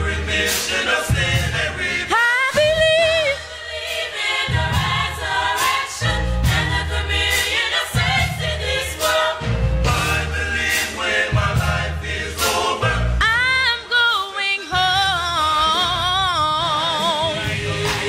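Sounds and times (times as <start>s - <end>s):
gospel choir singing: 0.0s - 18.0s.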